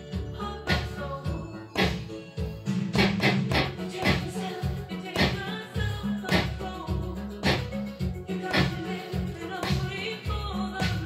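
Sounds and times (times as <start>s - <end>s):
music with steady beat and bass: 0.0s - 11.0s
electronic handclaps: 1.8s - 2.2s, 3.0s - 4.3s, 5.2s - 5.4s, 6.2s - 6.6s, 7.4s - 7.9s, 8.5s - 8.8s.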